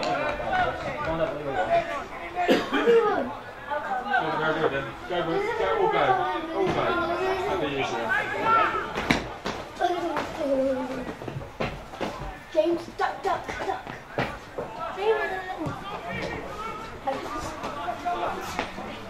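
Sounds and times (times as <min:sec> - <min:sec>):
people chattering: 0:00.0 - 0:19.0.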